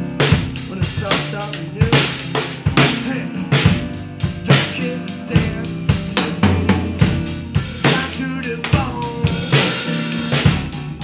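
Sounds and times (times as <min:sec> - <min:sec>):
drum kit played with sticks: 0:00.0 - 0:11.0
rock backing track with bass: 0:00.0 - 0:11.0.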